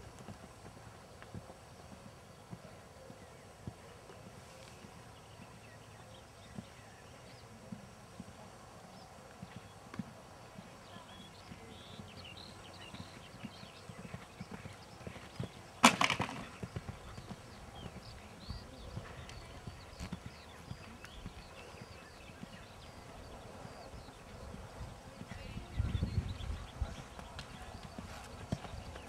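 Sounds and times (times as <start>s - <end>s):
horse hooves cantering on sand: 0.0s - 29.0s
loud sharp clatter: 15.8s - 16.4s.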